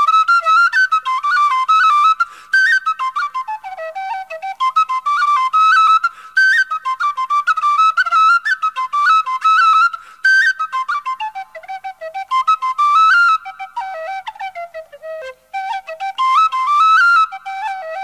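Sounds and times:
tin whistle playing a jig: 0.0 - 18.0.

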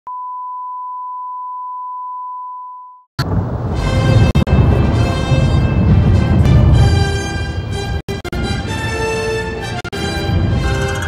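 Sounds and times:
steady test tone beep: 0.1 - 3.1.

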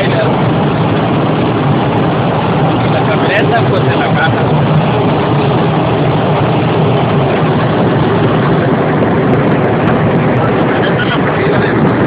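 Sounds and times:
truck engine and road noise: 0.0 - 12.0.

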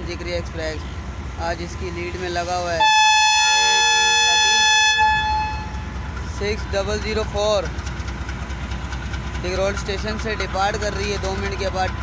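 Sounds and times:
diesel engine idling: 0.0 - 12.0
locomotive air horn blast: 2.8 - 5.9.

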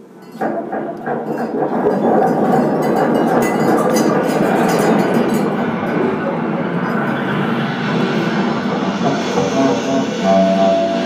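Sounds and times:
dense noisy drone: 0.0 - 11.0.

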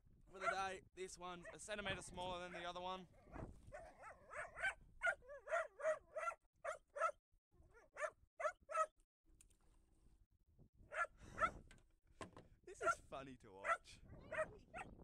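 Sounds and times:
dog barking and whining: 0.4 - 0.6, 3.2 - 8.9, 10.9 - 11.6, 12.8 - 13.0, 13.6 - 15.0.

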